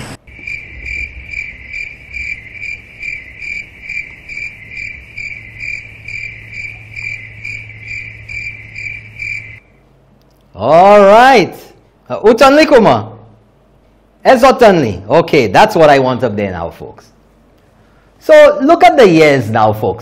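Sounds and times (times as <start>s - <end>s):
low electrical hum: 0.0s - 20.0s
insect chirping: 0.2s - 9.8s.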